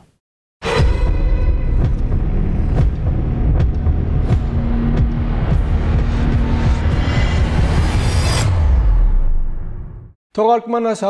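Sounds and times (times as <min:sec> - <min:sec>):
deep rumbling: 0:00.8 - 0:10.1.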